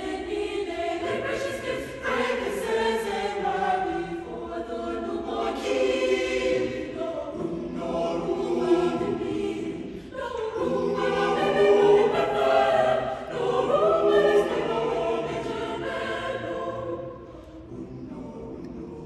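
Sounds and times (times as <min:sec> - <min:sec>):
choir singing in parts: 0:00.0 - 0:19.0.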